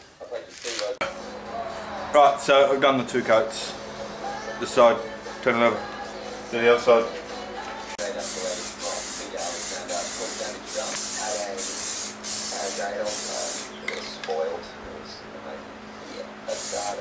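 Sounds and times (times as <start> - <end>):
aerosol spray can hissing: 8.0 - 13.7, 16.5 - 17.0.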